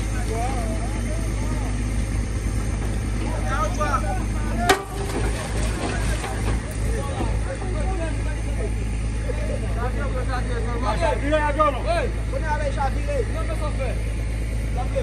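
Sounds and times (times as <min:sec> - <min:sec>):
people talking: 0:00.0 - 0:02.0, 0:03.1 - 0:14.1, 0:14.7 - 0:15.0
water pump engine drone: 0:00.0 - 0:15.0.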